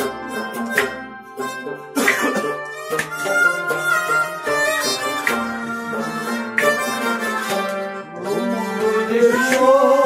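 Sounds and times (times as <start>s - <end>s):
harmonium chords: 0.0s - 10.0s
plucked lute: 0.0s - 10.0s.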